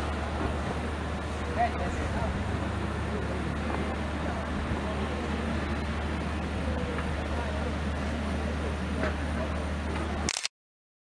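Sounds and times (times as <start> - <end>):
distant indistinct voices: 0.0 - 10.3.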